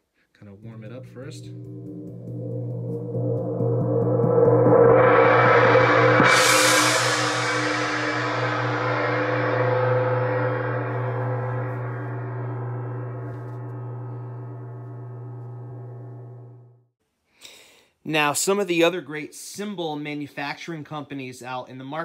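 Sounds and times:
wind gong ringing: 0:00.6 - 0:16.6.

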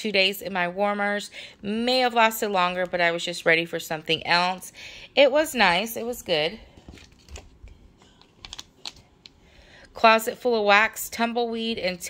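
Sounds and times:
plastic packaging clicking: 0:08.2 - 0:09.4.

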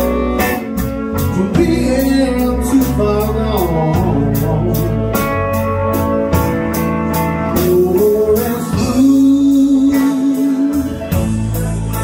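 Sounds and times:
electric guitar with vibrato: 0:00.0 - 0:12.0
live band playing ballad: 0:00.0 - 0:12.0.

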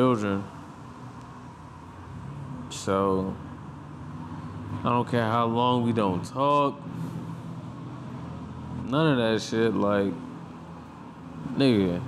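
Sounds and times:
faint room hum: 0:00.0 - 0:12.0
man speaking: 0:04.8 - 0:06.8, 0:08.8 - 0:10.2, 0:11.5 - 0:12.0.

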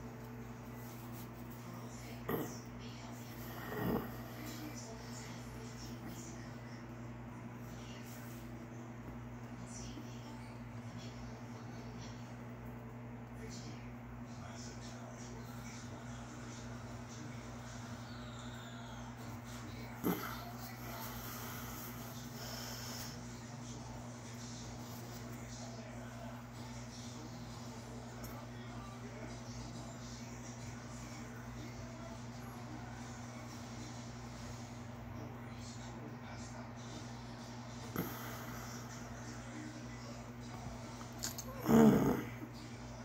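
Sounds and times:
low electrical hum: 0:00.0 - 0:43.0.

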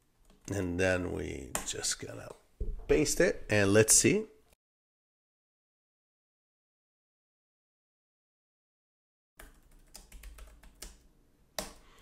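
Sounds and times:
typing on computer keyboard: 0:09.4 - 0:11.0.

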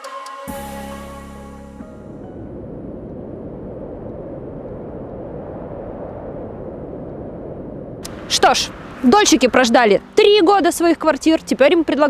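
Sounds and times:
low outdoor rumble: 0:01.1 - 0:12.0.

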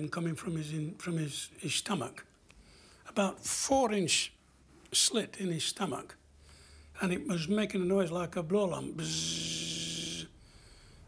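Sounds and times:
man imitating buzzing flame: 0:09.0 - 0:10.4.

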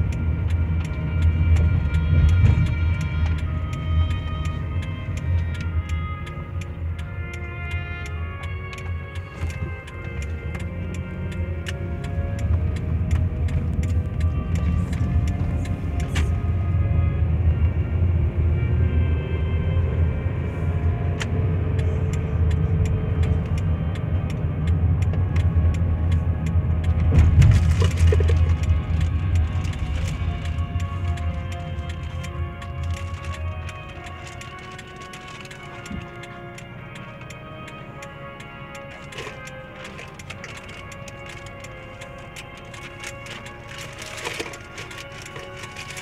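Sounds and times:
light ticking: 0:00.0 - 0:16.2, 0:21.8 - 0:46.0
car driving rumble from inside: 0:00.0 - 0:46.0
music with melody notes: 0:00.0 - 0:46.0.

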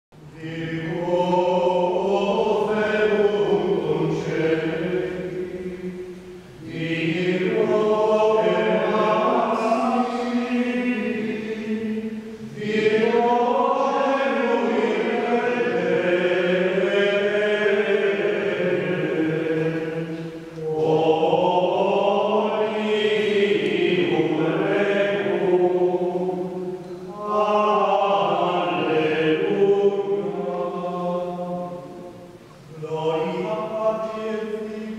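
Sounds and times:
men singing chant in unison: 0:00.2 - 0:32.0, 0:32.7 - 0:34.9.

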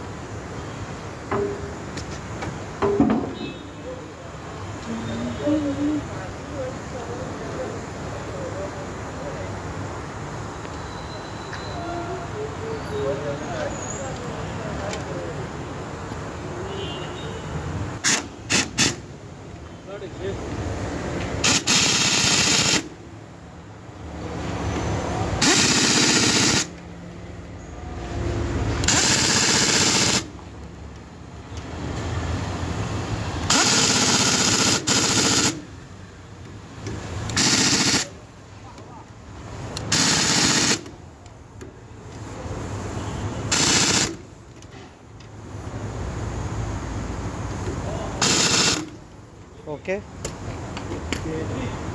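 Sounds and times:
pneumatic impact wrench hammering: 0:18.0 - 0:19.1, 0:21.4 - 0:23.0, 0:25.4 - 0:26.8, 0:28.7 - 0:30.4, 0:33.4 - 0:35.8, 0:36.8 - 0:38.2, 0:39.7 - 0:41.0, 0:43.4 - 0:44.8, 0:47.6 - 0:49.0.

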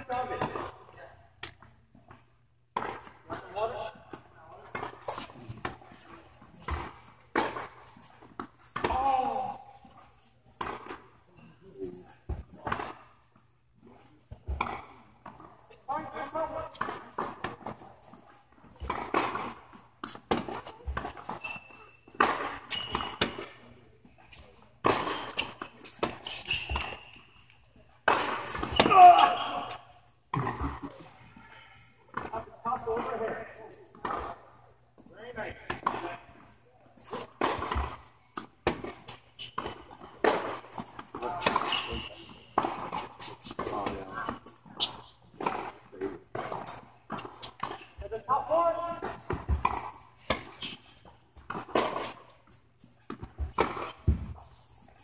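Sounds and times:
racquet striking tennis ball: 0:18.8 - 0:23.6, 0:24.8 - 0:27.2, 0:28.0 - 0:30.8, 0:37.2 - 0:44.4
tennis ball bouncing: 0:24.8 - 0:27.2, 0:37.0 - 0:41.8, 0:49.1 - 0:52.3.

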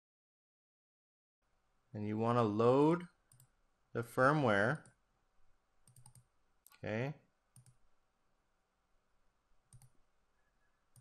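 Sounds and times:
faint computer mouse clicks: 0:05.8 - 0:06.8, 0:07.6 - 0:07.8, 0:09.7 - 0:10.0.

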